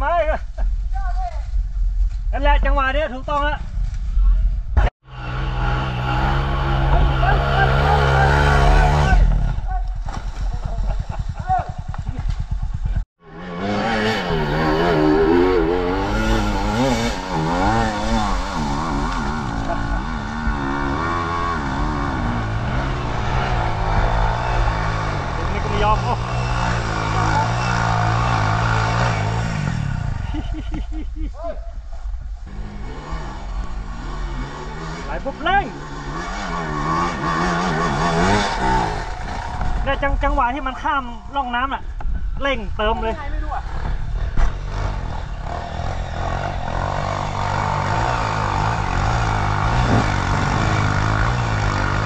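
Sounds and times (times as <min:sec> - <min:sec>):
motorcycle engines revving: 0:04.8 - 0:52.0.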